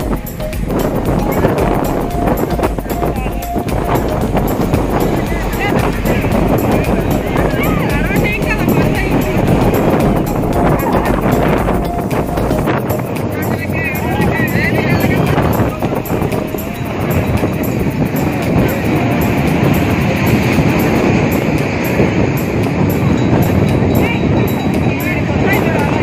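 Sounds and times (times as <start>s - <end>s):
music: 0.0s - 26.0s
people's voices: 0.0s - 26.0s
wind on microphone: 0.0s - 26.0s
waves breaking on beach: 12.7s - 26.0s.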